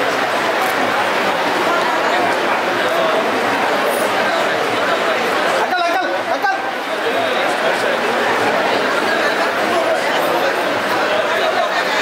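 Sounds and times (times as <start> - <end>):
chatter of overlapping voices: 0.0 - 12.0.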